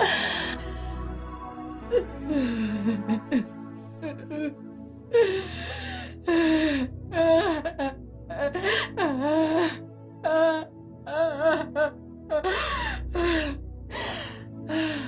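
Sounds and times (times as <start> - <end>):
low sustained music: 0.0 - 15.0
woman wailing and sobbing: 1.9 - 3.4, 5.2 - 15.0.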